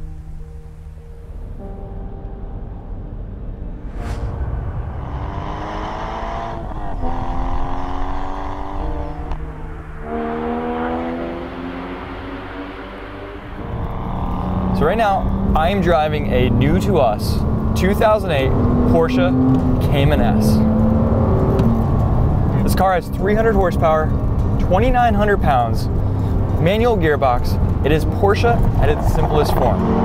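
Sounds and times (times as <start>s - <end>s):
car engine accelerating through gears: 4.8s - 24.6s, 25.4s - 30.0s.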